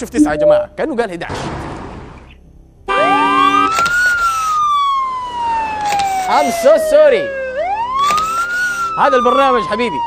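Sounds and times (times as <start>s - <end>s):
siren-like sweeping tone: 0.2s - 0.8s, 2.9s - 10.0s.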